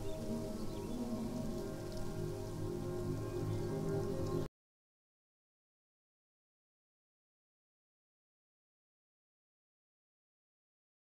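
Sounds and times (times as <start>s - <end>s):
crackling hiss: 0.0s - 4.5s.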